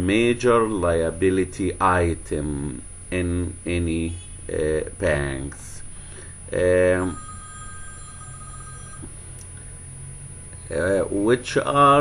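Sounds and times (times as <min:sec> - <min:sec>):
low steady hum: 0:00.0 - 0:12.0
faint two-pitch tone: 0:07.0 - 0:09.2.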